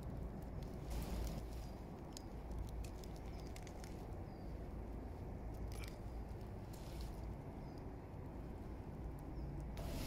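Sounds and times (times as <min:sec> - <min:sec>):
low steady rumble: 0:00.0 - 0:10.0
hand rustling through mushrooms and moss: 0:00.6 - 0:07.7.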